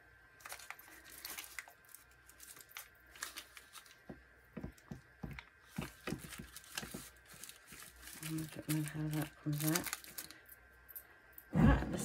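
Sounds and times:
newspaper crinkling: 0.4 - 4.2, 5.6 - 10.4.

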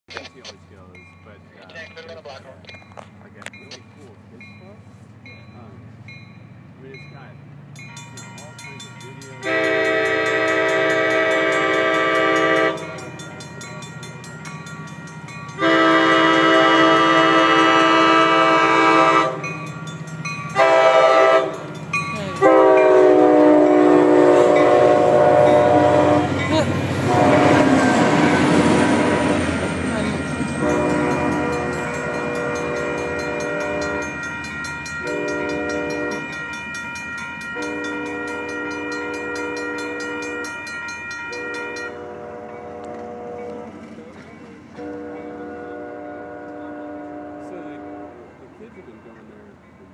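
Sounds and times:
train cars rumbling past: 0.1 - 49.9
train horn: 9.4 - 13.1, 15.6 - 19.6, 20.5 - 34.3, 35.0 - 36.5, 37.5 - 44.1, 44.7 - 48.5
faint horn-like tones: 15.6 - 19.5, 22.4 - 26.4, 27.1 - 29.4, 30.1 - 31.8, 41.4 - 43.9, 44.8 - 48.5.

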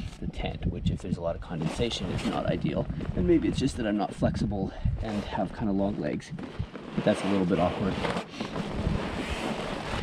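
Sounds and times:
wind buffeting microphone: 0.0 - 6.7.

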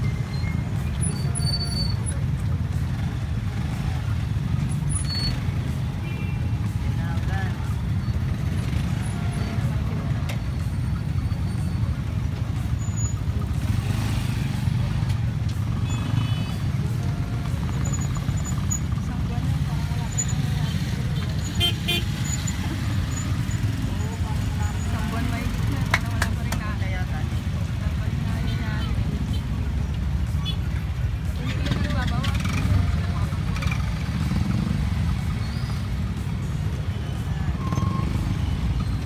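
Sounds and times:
motorcycle engines idling: 0.0 - 39.0
people's voices: 0.0 - 39.0.

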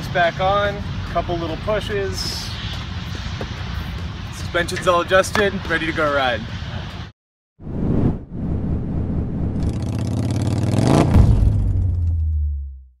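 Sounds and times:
whoosh: 7.6 - 12.2
engine revving: 9.4 - 12.4.

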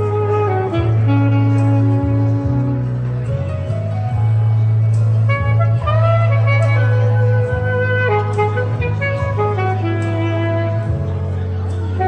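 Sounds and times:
backing track bass line: 0.0 - 12.0
saxophone melody: 0.0 - 12.0.

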